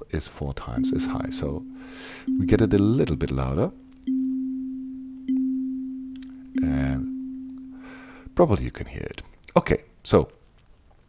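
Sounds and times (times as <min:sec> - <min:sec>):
kalimba synth notes: 0:00.8 - 0:08.4.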